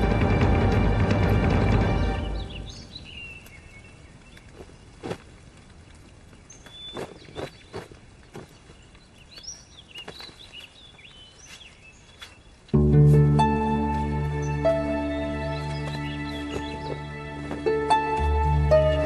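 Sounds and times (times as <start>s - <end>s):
birds chirping: 0.0s - 19.0s
music cue: 12.8s - 19.0s.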